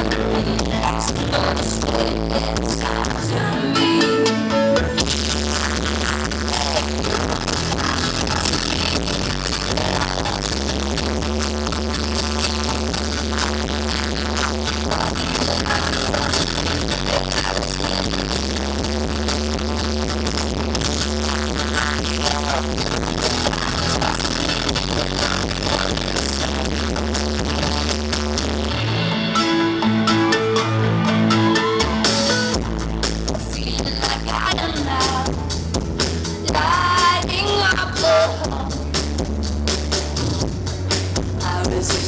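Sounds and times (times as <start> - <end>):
electric guitar: 0.0 - 42.0
keyboards: 0.0 - 42.0
live pop-rock band playing: 0.0 - 42.0
sustained bass notes: 0.0 - 42.0
steady drum beat: 5.0 - 28.5, 32.0 - 42.0.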